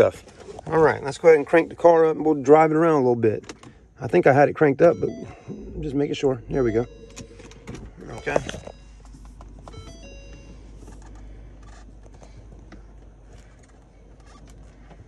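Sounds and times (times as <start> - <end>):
car cabin hum: 4.1 - 15.0
short electronic chime: 4.9 - 10.9.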